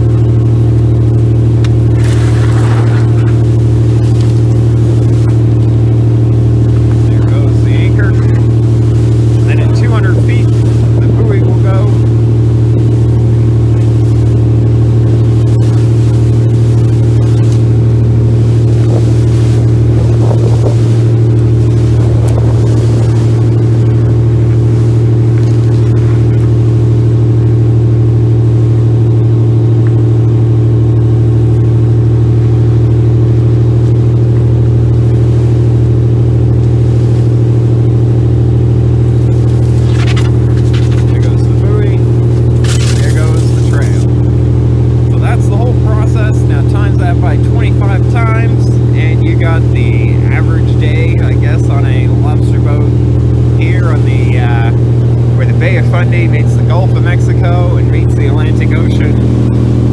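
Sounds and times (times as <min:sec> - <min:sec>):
boat diesel engine drone: 0:00.0 - 0:59.9
indistinct voices talking: 0:06.7 - 0:13.0, 0:39.3 - 0:53.0, 0:53.6 - 0:59.9.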